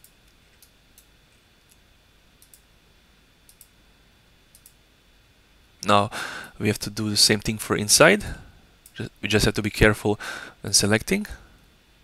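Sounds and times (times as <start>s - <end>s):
faint computer mouse clicks: 2.4s - 2.6s, 3.5s - 3.7s, 4.5s - 4.8s.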